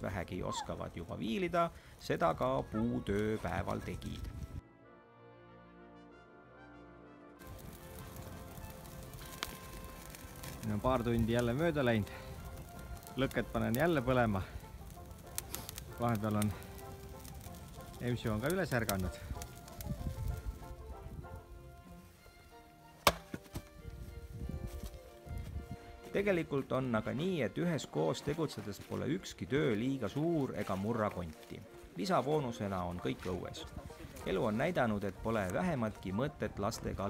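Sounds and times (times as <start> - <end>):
quiet brass background music: 0.0 - 37.0
axe chopping into wood: 23.0 - 23.6.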